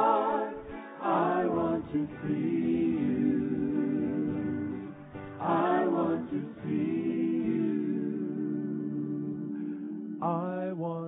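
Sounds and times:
vocal group singing: 0.0 - 10.8.

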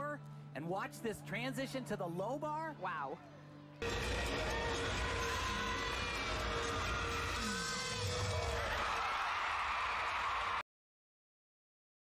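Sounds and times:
arena crowd noise: 3.8 - 10.6.

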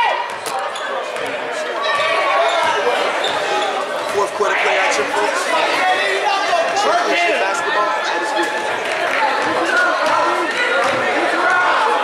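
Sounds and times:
overlapping voices: 4.1 - 12.0.

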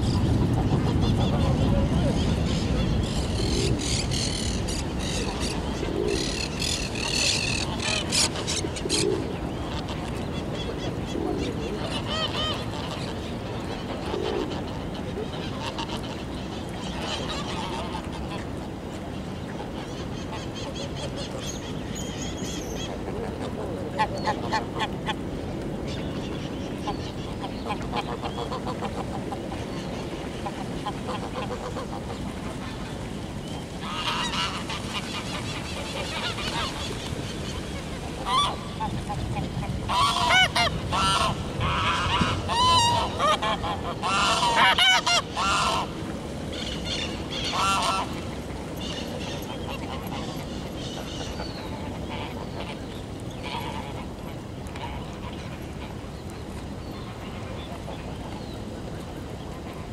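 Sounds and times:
geese honking: 33.8 - 37.0, 38.2 - 52.8.

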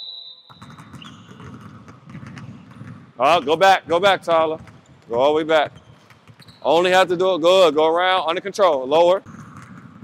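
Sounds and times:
basketballs dribbling on wooden floor: 0.5 - 10.0.

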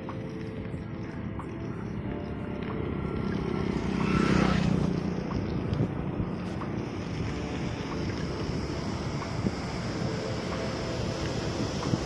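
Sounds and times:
wind buffeting microphone: 0.6 - 12.0.

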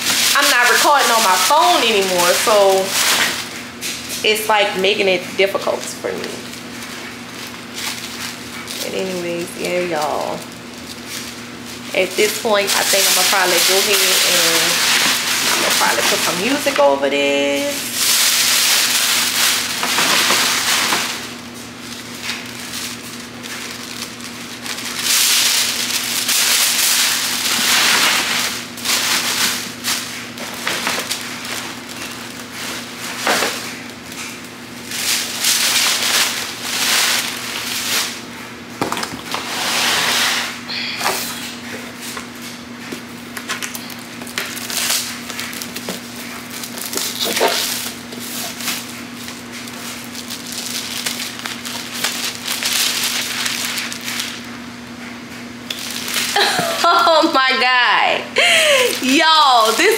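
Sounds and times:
tissue paper crinkling: 0.0 - 38.3, 38.9 - 54.6, 55.3 - 57.8, 58.6 - 59.9
steady low hum: 0.0 - 59.9.

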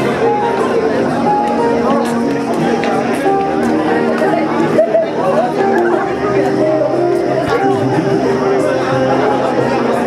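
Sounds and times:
many people chatting: 0.0 - 10.0
music with held notes: 0.0 - 10.0.

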